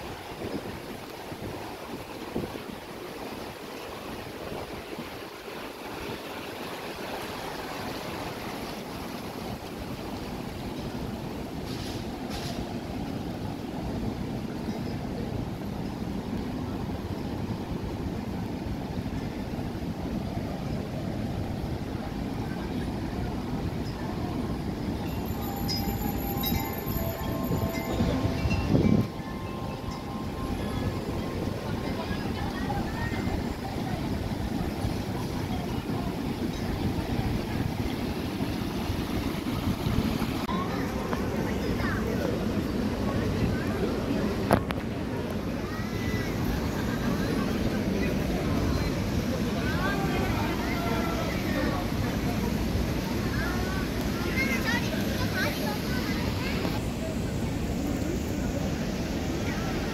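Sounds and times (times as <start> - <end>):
stream water rushing over stones: 0.0 - 59.9.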